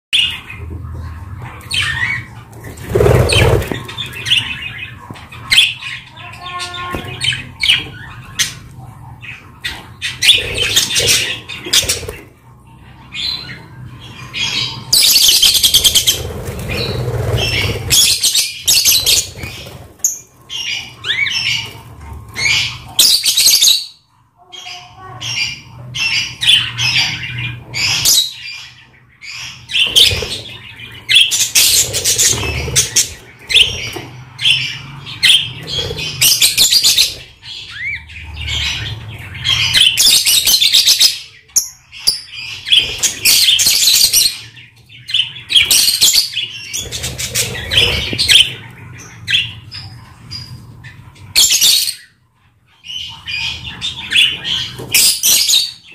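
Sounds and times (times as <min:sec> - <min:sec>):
birds squawking and chirping: 0:00.1 - 0:55.9
wings flapping: 0:02.6 - 0:04.1.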